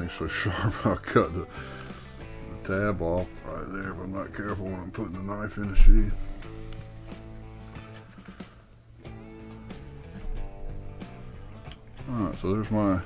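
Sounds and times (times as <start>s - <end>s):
background music held notes: 0.0s - 13.0s.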